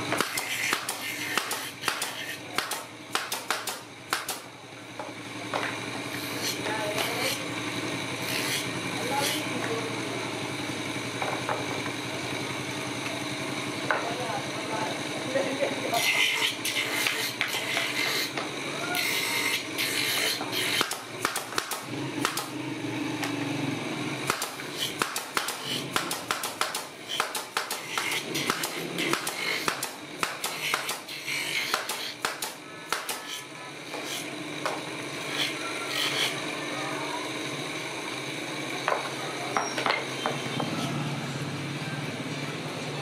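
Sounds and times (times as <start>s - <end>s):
bench motor running: 0.0s - 43.0s
wood rubbing on sanding drum: 8.2s - 9.6s, 15.9s - 18.4s, 19.0s - 20.8s, 30.5s - 32.2s, 35.2s - 36.4s
spindle drum motor hum: 33.2s - 43.0s.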